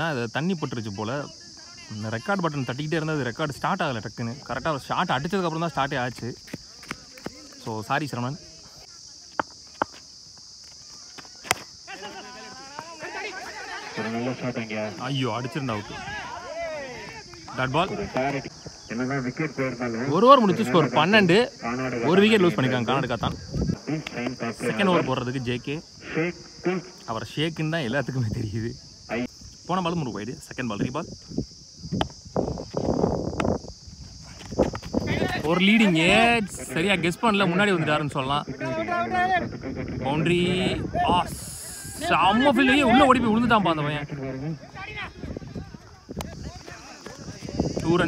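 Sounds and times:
high insect buzz: 0:00.3 - 0:48.0
cricket bat striking ball: 0:11.2 - 0:11.8
players shouting: 0:11.2 - 0:18.6
excited shouting: 0:11.3 - 0:18.5, 0:40.1 - 0:48.0.

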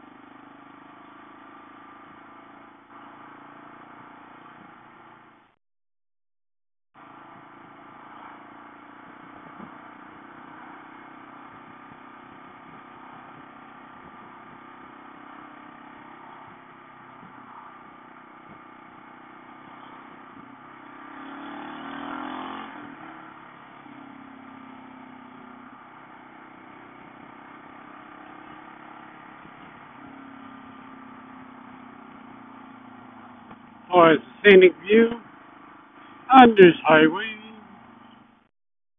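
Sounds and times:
wind and road noise: 0:00.0 - 0:05.5, 0:07.0 - 0:38.4
motorcycle engine cruising: 0:00.0 - 0:05.6, 0:07.0 - 0:38.5
vehicle passing: 0:20.7 - 0:38.4.

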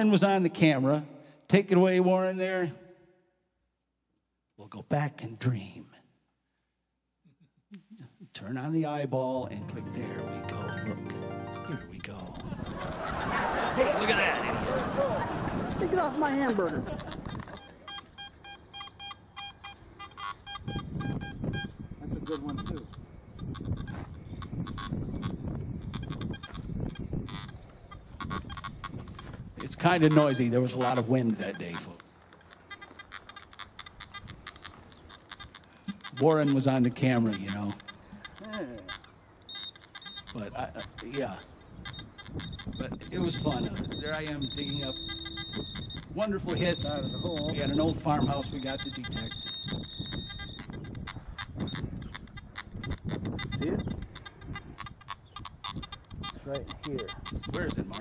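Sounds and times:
metal detector warbling tones: 0:09.5 - 0:13.2, 0:16.9 - 0:32.0, 0:35.3 - 0:58.0
wind buffeting microphone: 0:12.1 - 0:17.6, 0:20.6 - 0:30.0, 0:40.4 - 0:58.0.

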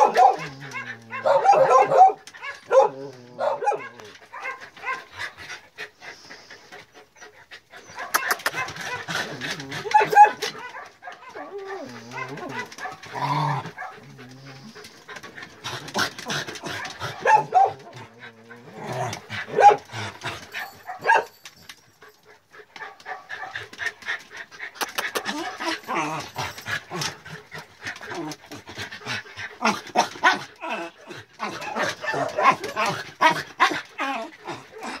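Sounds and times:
dog paws clicking and scuffling: 0:00.0 - 0:35.0
dogs whining and yipping: 0:00.0 - 0:35.0.

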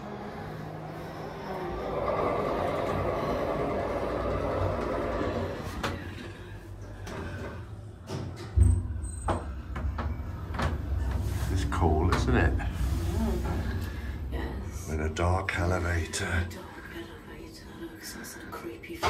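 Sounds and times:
lift whirring and rumbling: 0:00.0 - 0:19.0.

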